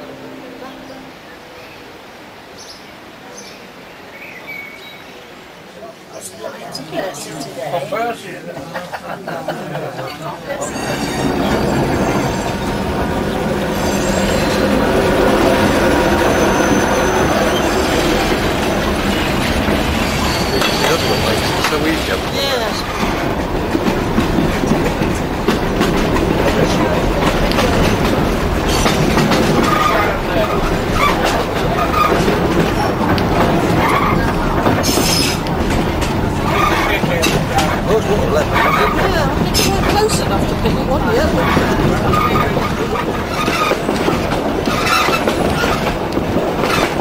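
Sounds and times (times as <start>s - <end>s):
train wheels clattering on rails: 10.6s - 47.0s
high wheel squeals: 13.6s - 22.1s.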